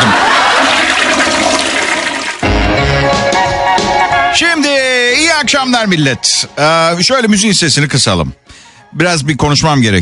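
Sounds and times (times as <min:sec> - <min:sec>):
toilet flushing: 0:00.0 - 0:02.5.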